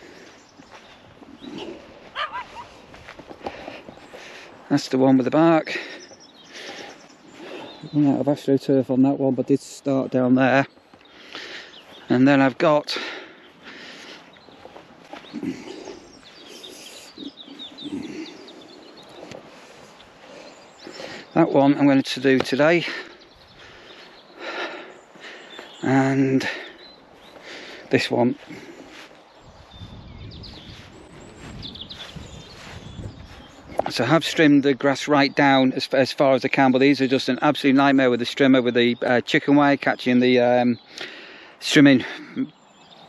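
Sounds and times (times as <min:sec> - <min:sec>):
faint animal calls: 0:01.4 - 0:02.9
small bird chirping: 0:13.4 - 0:34.7.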